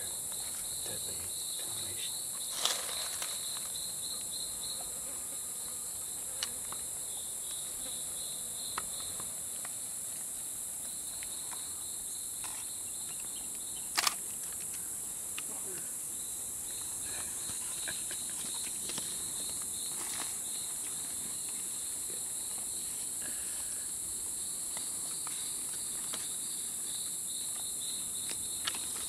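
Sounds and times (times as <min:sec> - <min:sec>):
insects hissing: 0:00.0 - 0:29.0
pulsing insect trill: 0:00.0 - 0:29.0.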